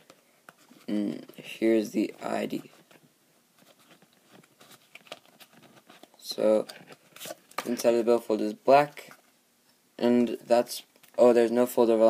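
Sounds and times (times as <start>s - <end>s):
rustling of wallet handling: 2.5s - 7.9s.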